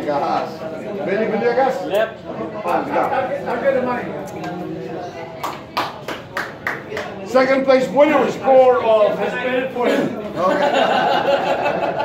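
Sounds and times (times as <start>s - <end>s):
hand claps: 5.4s - 7.2s.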